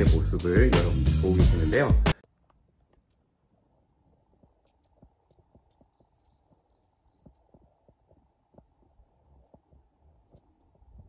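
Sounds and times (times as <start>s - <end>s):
soft low thumps and rumble: 4.0s - 11.0s
high bird chirps: 5.0s - 7.8s.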